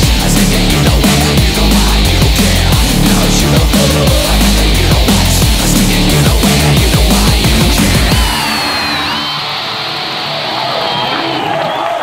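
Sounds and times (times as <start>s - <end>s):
live rock band playing: 0.0s - 11.1s
high gliding tones: 2.8s - 10.3s
crowd cheering and whooping: 7.5s - 12.0s.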